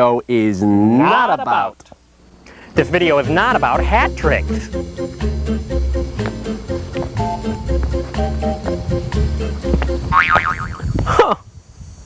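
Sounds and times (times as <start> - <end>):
cartoon boing sound effect: 10.1 - 10.9.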